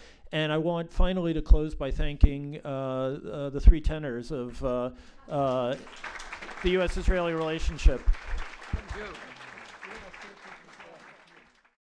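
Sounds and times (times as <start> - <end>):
audience applauding: 5.3 - 11.8.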